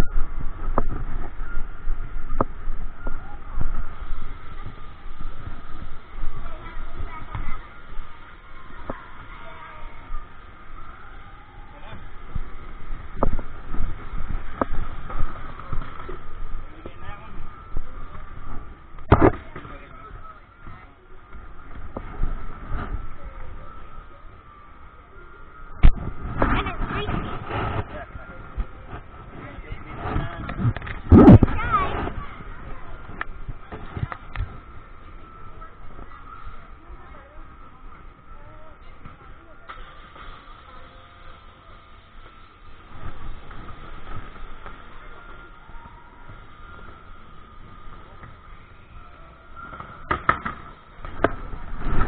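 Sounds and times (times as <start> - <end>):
indoor hall hum: 0.0 - 52.0
faint steady tone: 32.2 - 52.0.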